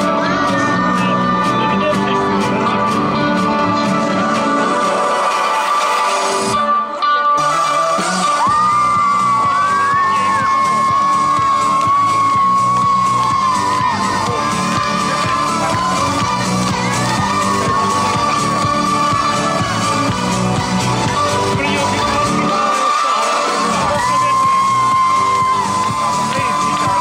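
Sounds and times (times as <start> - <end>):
dance music: 0.0 - 27.0.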